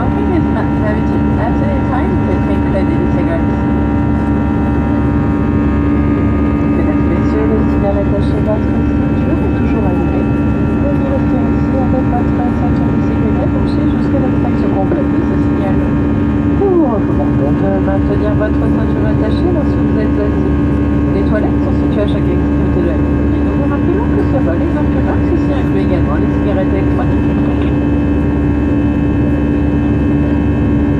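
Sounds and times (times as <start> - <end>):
airplane cabin engine drone: 0.0 - 30.9
faint steady tones: 0.0 - 30.9
low steady hum: 0.0 - 30.9.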